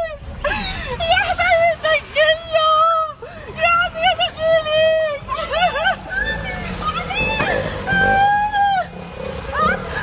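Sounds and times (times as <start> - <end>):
woman screaming: 7.1 - 8.9.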